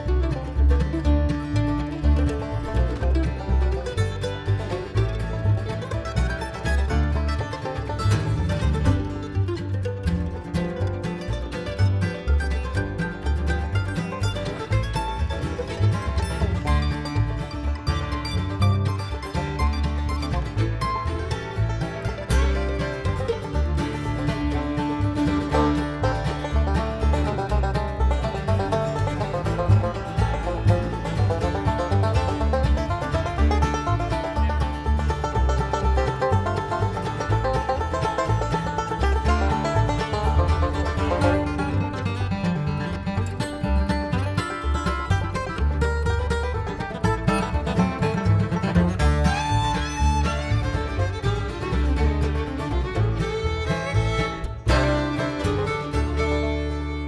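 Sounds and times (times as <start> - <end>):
bluegrass band playing: 0.0 - 57.0
upright bass: 0.0 - 57.0.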